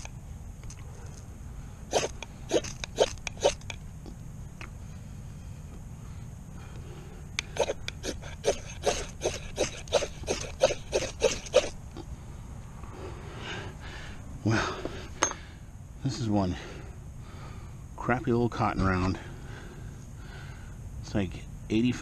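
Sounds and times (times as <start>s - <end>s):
metal striker scraping a bar: 7.5s - 11.7s.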